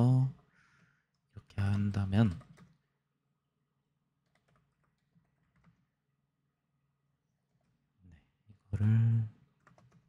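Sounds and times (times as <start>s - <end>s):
keystrokes on a computer keyboard: 2.2s - 2.8s, 4.2s - 5.9s, 9.5s - 10.0s.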